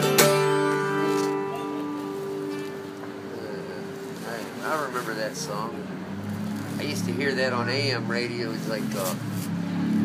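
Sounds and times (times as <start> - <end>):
motorcycle engine rumble: 0.0 - 10.0
person talking: 3.3 - 5.9.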